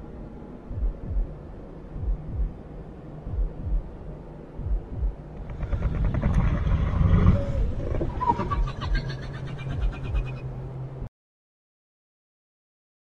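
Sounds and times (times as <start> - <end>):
low rumbling drone: 0.0 - 11.1
deep thumps: 0.7 - 1.4, 2.0 - 2.6, 3.3 - 3.9, 4.6 - 8.1
growling rattling build: 5.4 - 10.6.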